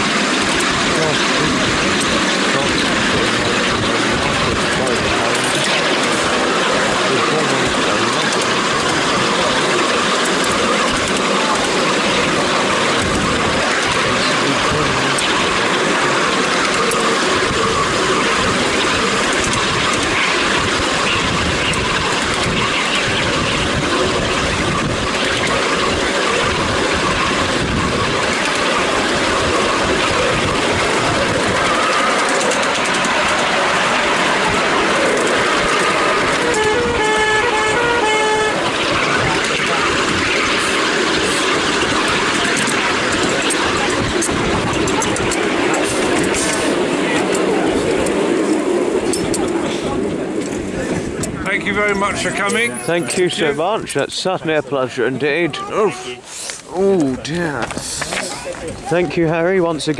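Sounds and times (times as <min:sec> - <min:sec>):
miniature train wheels rumbling on rails: 0:00.0 - 0:59.9
wind on microphone: 0:17.3 - 0:52.7.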